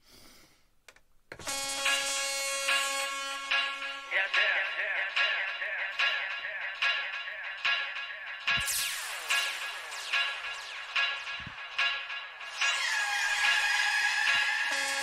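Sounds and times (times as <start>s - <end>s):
held synth chord: 1.4s - 15.0s
rhythmic electronic pulses: 1.4s - 15.0s.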